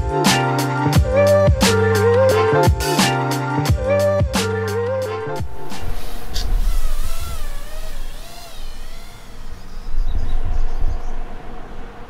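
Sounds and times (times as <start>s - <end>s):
quadcopter motors whining: 5.2s - 10.3s
low rumble: 5.2s - 11.7s.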